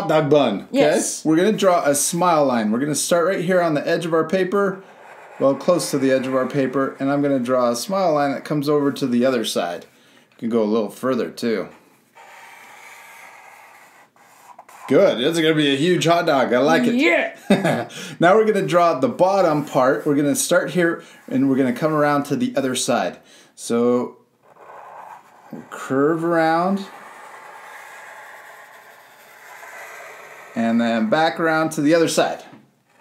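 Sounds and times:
marker drawn across paper: 3.4s - 8.2s, 11.8s - 15.0s, 24.4s - 30.7s.

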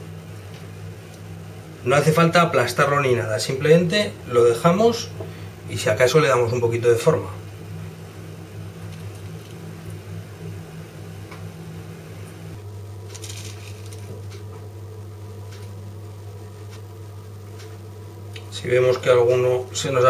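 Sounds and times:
steady low hum: 0.0s - 20.0s
cheese rustling on baking paper: 13.0s - 14.3s.

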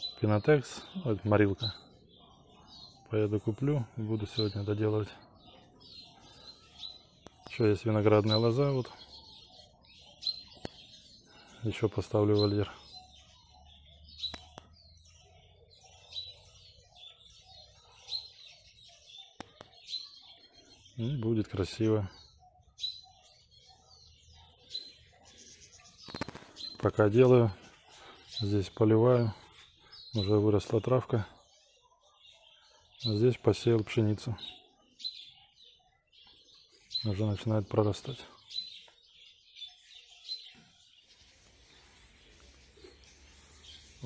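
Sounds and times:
small birds chirping: 0.0s - 44.0s.

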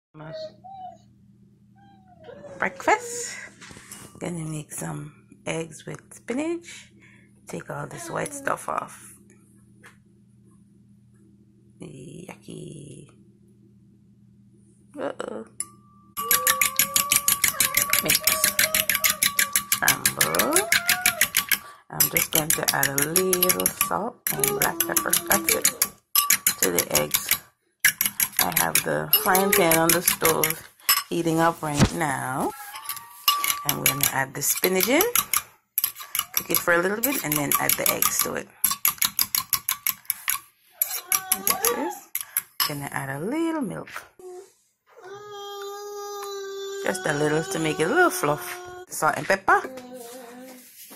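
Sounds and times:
fork whisking eggs in bowl: 16.2s - 42.8s.

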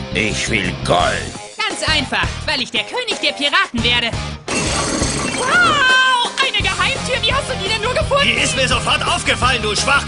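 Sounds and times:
background music: 0.0s - 10.0s
crashing shattering sound effect: 4.5s - 5.8s.

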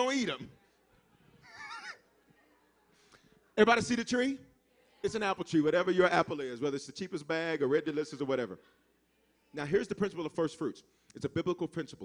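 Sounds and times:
sermon speech: 0.0s - 0.6s, 3.6s - 8.6s, 9.5s - 12.0s
high-pitched wavering laugh: 1.4s - 2.0s.

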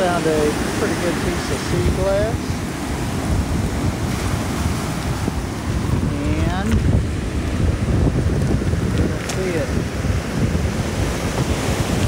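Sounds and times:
ocean surf on cobble beach: 0.0s - 12.0s
wind buffeting microphone: 0.0s - 12.0s.

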